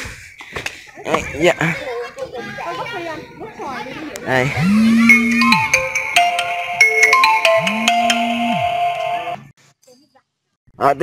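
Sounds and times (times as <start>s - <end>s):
phone ringtone melody: 4.6s - 9.5s.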